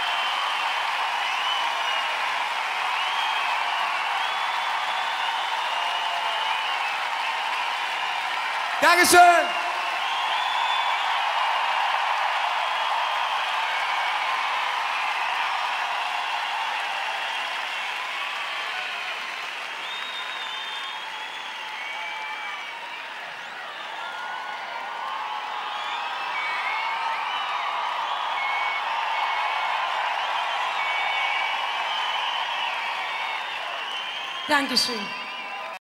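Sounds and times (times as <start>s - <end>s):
high shouts: 0.0s - 19.0s
crowd cheering: 0.0s - 35.8s
crowd clapping: 0.0s - 35.8s.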